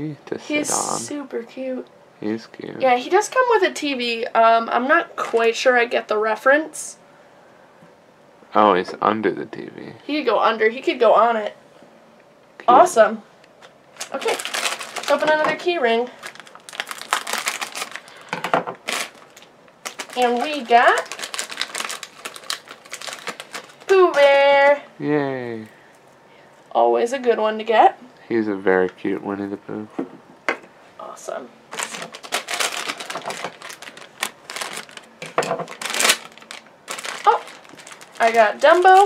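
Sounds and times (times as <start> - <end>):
foil packet crinkling: 13.9 - 24.4, 31.7 - 39.0.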